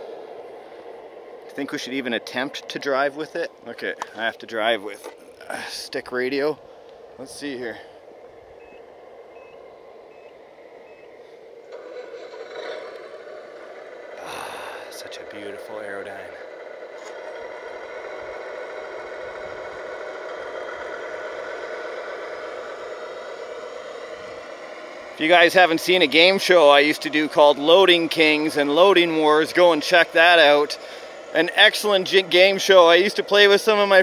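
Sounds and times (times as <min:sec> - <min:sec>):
toy truck motor and gears whining: 0:00.0 - 0:34.0
faint short beeps: 0:09.4 - 0:11.1.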